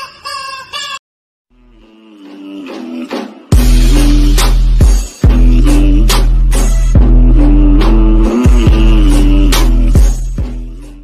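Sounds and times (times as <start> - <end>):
chicken clucking squawks: 0.0 - 1.0.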